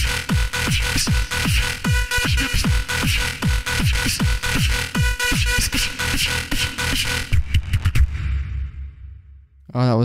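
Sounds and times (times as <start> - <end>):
beatbox beat hits: 0.0 - 8.4
low bass: 0.0 - 9.5.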